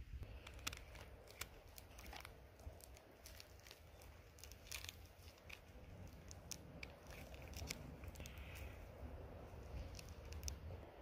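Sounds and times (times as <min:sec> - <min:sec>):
work glove rustling: 0:00.0 - 0:10.8
low steady rumble: 0:00.0 - 0:11.0
ore pieces clicking together: 0:00.3 - 0:08.8, 0:09.6 - 0:10.7.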